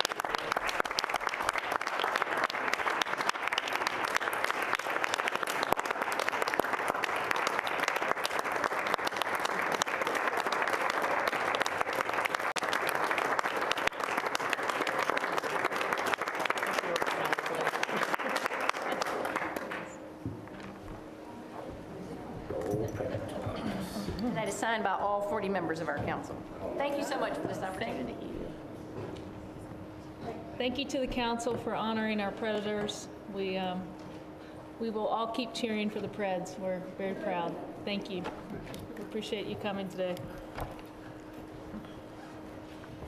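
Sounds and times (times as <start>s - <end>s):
people applauding: 0.0s - 20.0s.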